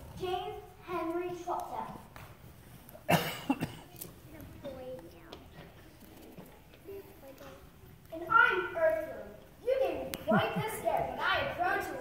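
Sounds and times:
person coughing: 3.1 - 3.9.

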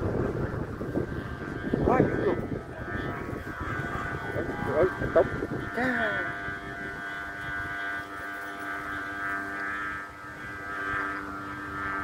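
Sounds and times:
kite flutes droning: 0.0 - 12.0
low wind rumble: 0.0 - 12.0.

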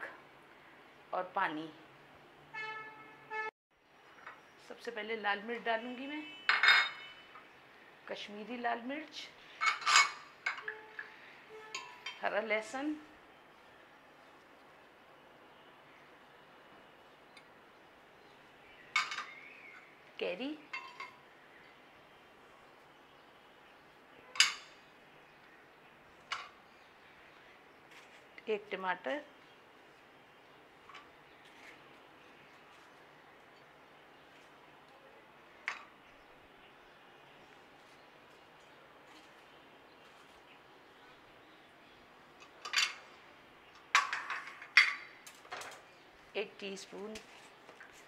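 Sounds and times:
glass bowl clinking: 6.5 - 7.2.

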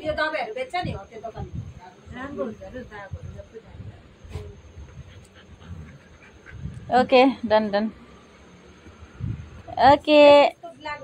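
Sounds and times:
woman speaking: 0.0 - 4.6, 6.9 - 8.0, 9.7 - 11.0
dog panting softly: 4.4 - 7.1.

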